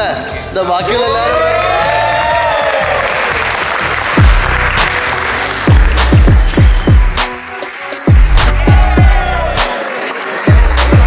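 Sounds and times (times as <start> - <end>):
group clapping and cheering: 1.2 - 11.0
beat-driven music: 3.2 - 11.0.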